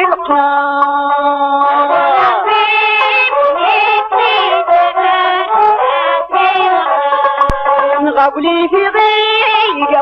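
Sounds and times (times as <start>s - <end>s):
instrumental accompaniment: 0.0s - 10.0s
person singing: 0.0s - 10.0s.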